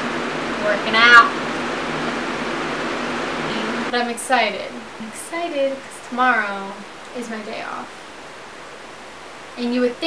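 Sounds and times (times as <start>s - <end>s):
box fan whooshing: 0.0s - 3.9s.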